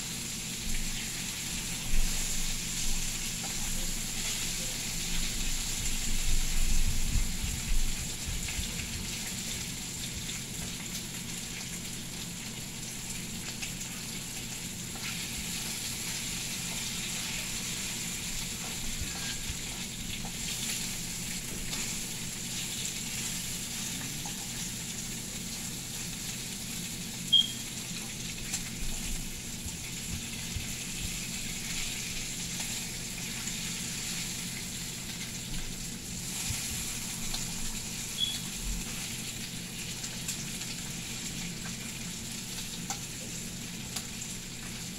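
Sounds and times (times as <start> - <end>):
bacon sizzling in a frying pan: 0.0 - 44.9.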